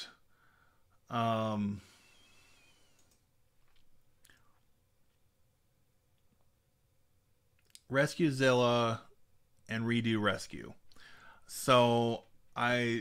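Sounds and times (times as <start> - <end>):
computer mouse clicks: 2.8 - 4.4.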